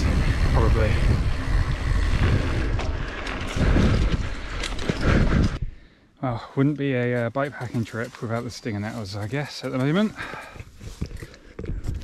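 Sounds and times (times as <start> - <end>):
wind buffeting microphone: 0.0 - 5.8.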